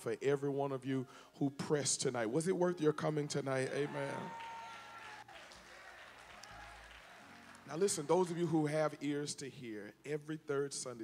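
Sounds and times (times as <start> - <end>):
faint applause: 3.7 - 8.1.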